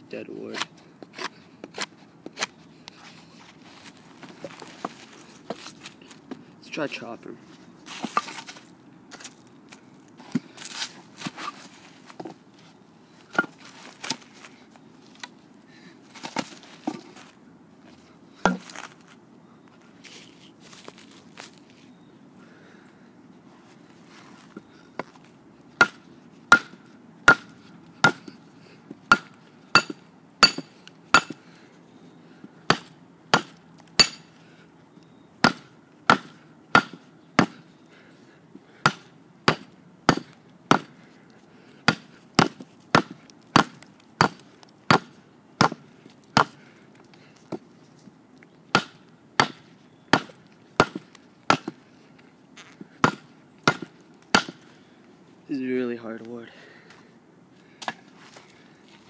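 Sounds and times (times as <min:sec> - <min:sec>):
knife chopping wood: 0:18.4 - 0:18.8, 0:25.8 - 0:28.4, 0:29.1 - 0:31.4, 0:32.7 - 0:34.3, 0:35.4 - 0:37.6, 0:38.8 - 0:40.9, 0:41.8 - 0:46.6, 0:48.7 - 0:51.8, 0:52.8 - 0:54.7.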